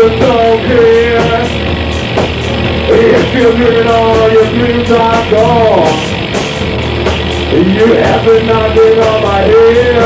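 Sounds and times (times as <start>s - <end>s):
bass guitar: 0.0s - 10.0s
drums: 0.0s - 10.0s
electric guitars: 0.0s - 10.0s.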